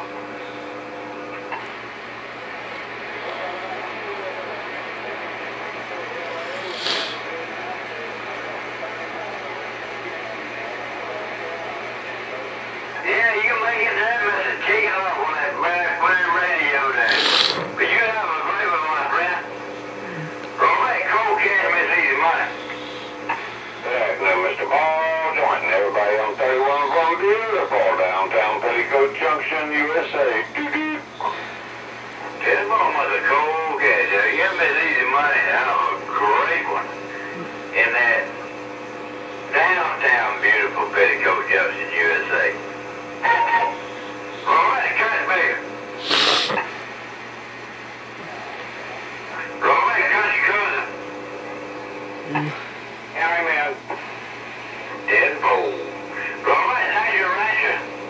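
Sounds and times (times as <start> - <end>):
steady hum: 0.0 - 58.0
narrow-band radio speech: 12.2 - 31.6, 32.2 - 46.8, 48.2 - 51.0, 52.2 - 54.1, 54.9 - 57.9.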